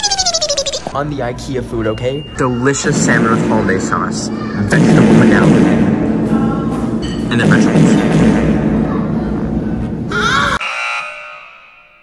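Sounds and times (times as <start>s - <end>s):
loud dense noise: 0.0s - 10.6s
buzzer sound effect: 10.6s - 11.6s.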